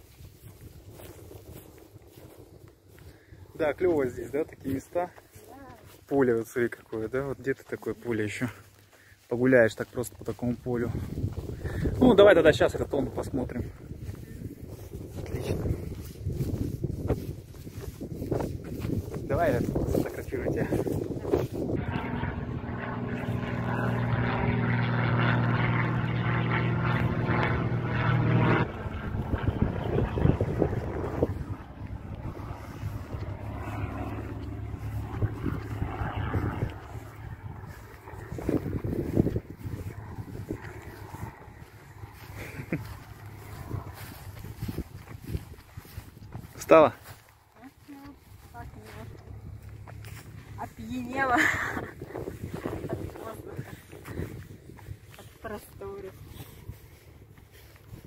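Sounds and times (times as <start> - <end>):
wind buffeting microphone: 0.0 - 6.0, 10.1 - 58.0
propeller airplane engine drone: 0.0 - 58.0.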